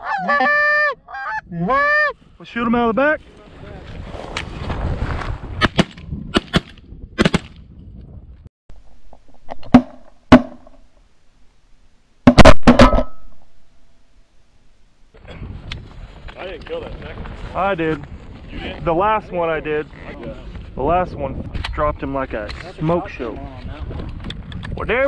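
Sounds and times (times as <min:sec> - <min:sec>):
shotgun shots: 0:05.6 - 0:07.5.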